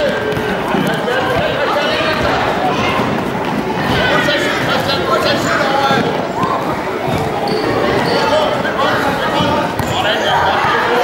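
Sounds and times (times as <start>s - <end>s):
football bouncing on wooden floor: 0.0s - 6.3s, 7.0s - 10.9s
spectators chatting: 0.0s - 11.0s.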